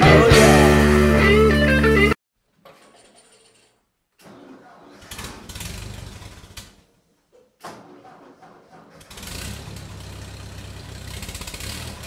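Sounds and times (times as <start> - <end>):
blues-rock electric guitar: 0.0 - 2.2.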